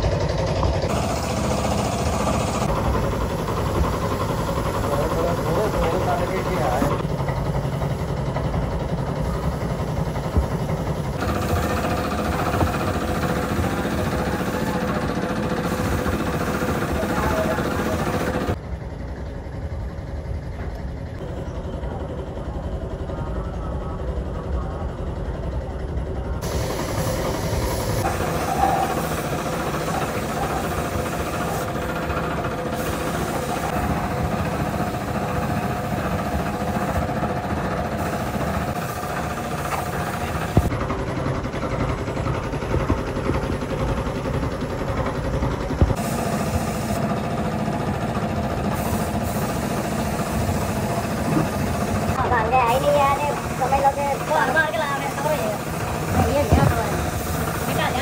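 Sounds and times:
workshop machinery humming: 0:00.0 - 0:58.0
spray gun hissing: 0:00.9 - 0:07.0, 0:09.2 - 0:18.6, 0:26.4 - 0:40.7, 0:45.7 - 0:58.0.

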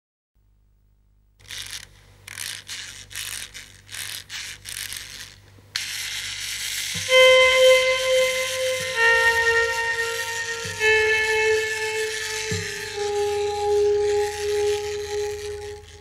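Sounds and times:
sudden hiss: 0:05.8 - 0:16.0
whistle-like musical note: 0:07.0 - 0:16.0.

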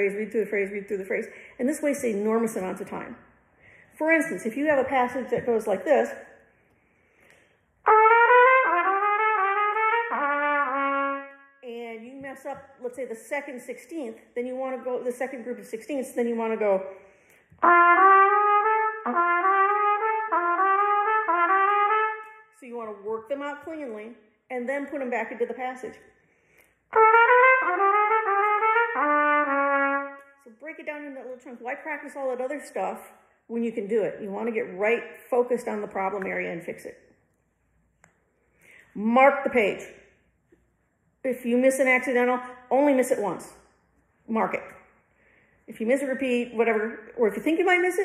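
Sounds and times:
trumpet playing quick figures: 0:07.8 - 0:11.6, 0:17.6 - 0:22.6, 0:26.9 - 0:30.4.

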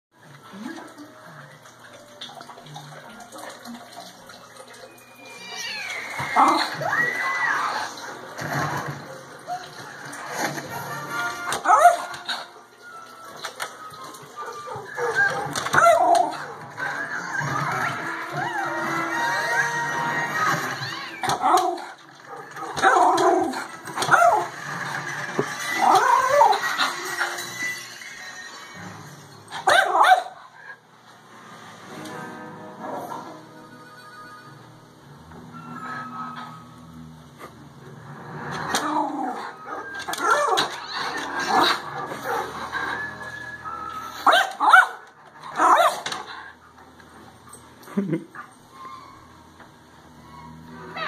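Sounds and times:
music from television: 0:00.1 - 0:51.0
dog barking: 0:11.6 - 0:12.2, 0:29.6 - 0:30.4, 0:44.2 - 0:46.1.

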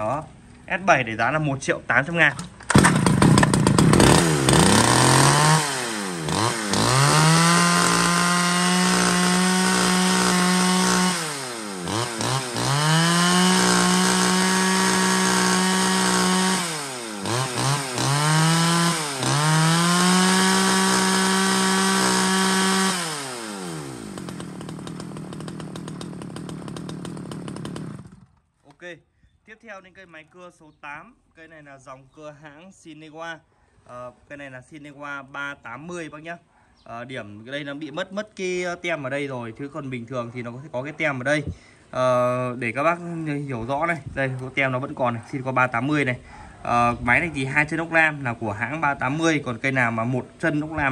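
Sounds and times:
chainsaw revving: 0:02.6 - 0:28.4
chainsaw idling: 0:02.7 - 0:28.5.

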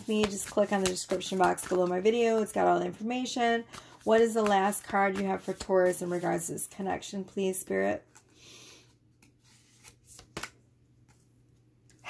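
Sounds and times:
cards flicking and rustling: 0:00.0 - 0:06.4, 0:09.2 - 0:11.3.

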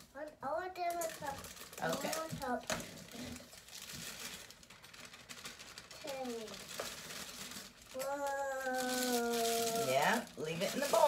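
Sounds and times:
plastic bag crinkling: 0:00.8 - 0:11.0.

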